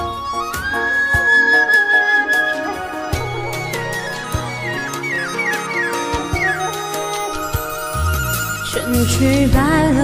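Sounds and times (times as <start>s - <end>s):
pop ballad backing track: 2.6s - 10.0s
woman singing: 8.6s - 10.0s.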